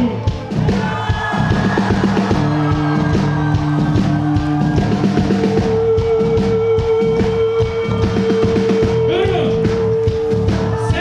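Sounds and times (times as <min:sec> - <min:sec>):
drum kit beat: 0:00.0 - 0:11.0
rock band playing: 0:00.0 - 0:11.0.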